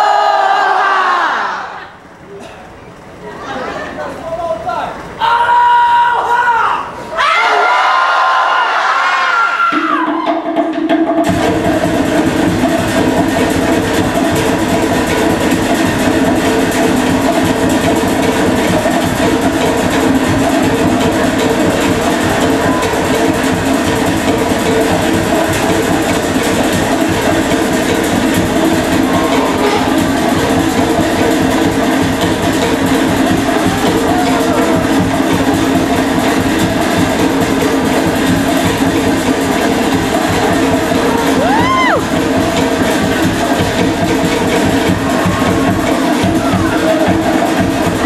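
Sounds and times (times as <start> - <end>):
fast drumming: 9.7 - 48.0.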